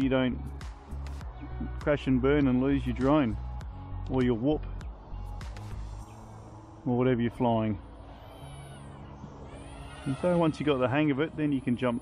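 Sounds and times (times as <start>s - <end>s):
quadcopter motors whining: 8.0s - 12.0s.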